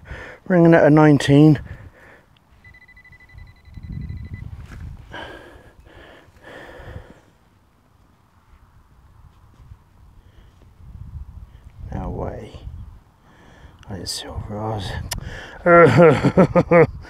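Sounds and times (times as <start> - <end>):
metal detector tone: 2.6 - 4.9.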